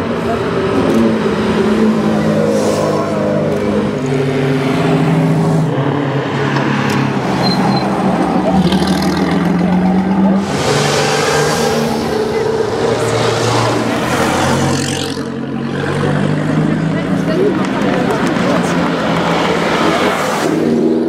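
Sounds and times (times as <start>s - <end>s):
car engines driving past: 0.0s - 21.0s
crowd chatter: 0.0s - 21.0s.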